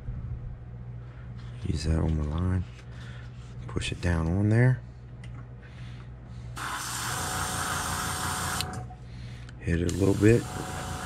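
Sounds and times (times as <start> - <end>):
low steady hum: 0.0 - 11.0
airbrush spraying hiss: 6.6 - 8.6, 9.9 - 11.0.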